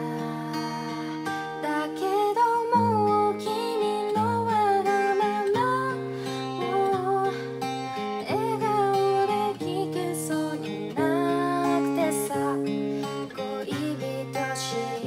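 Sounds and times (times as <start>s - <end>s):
acoustic guitar strumming: 0.0s - 15.0s
woman singing a ballad: 0.0s - 15.0s.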